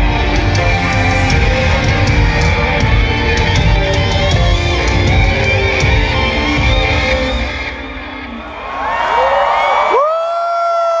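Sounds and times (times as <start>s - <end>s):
crowd cheering: 0.0s - 11.0s
live concert music with bass: 0.0s - 11.0s.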